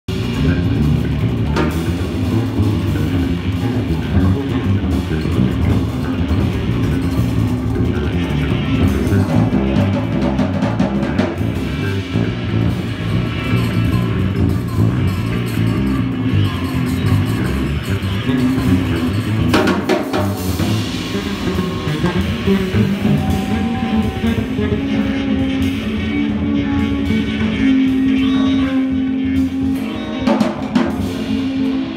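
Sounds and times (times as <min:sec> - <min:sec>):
live rock band playing: 0:00.1 - 0:31.9.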